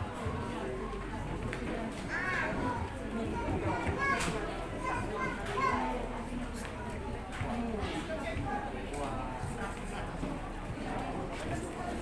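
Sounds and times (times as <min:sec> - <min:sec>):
background chatter of voices: 0:00.0 - 0:12.0.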